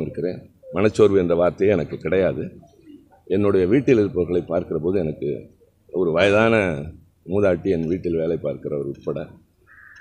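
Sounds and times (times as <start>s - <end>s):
man speaking into microphones: 0.0s - 2.6s, 3.2s - 9.4s.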